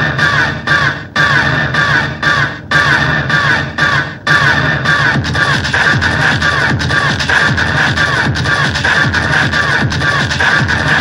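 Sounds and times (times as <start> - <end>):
pulsing low beat: 0.0 - 11.0
techno noisy stabs: 0.0 - 11.0.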